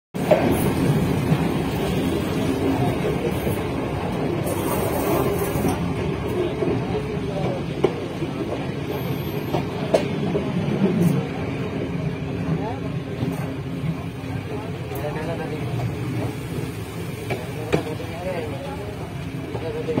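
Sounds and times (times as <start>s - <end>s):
train rumbling on track: 0.2s - 20.0s
people talking: 2.3s - 11.4s, 12.4s - 20.0s.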